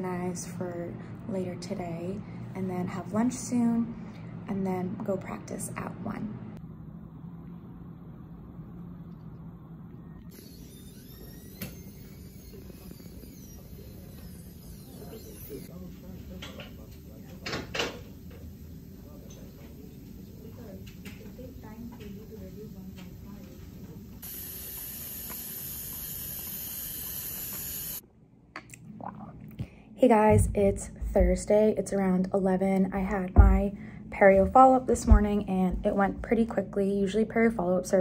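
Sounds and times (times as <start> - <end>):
low room hum: 0.0 - 38.0
dental drill high-pitched hiss: 10.3 - 15.7, 24.2 - 28.0.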